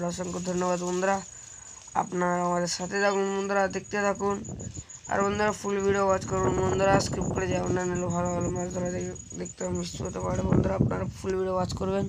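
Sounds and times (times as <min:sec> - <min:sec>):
insect trilling: 0:00.0 - 0:12.0
person speaking: 0:00.0 - 0:12.0.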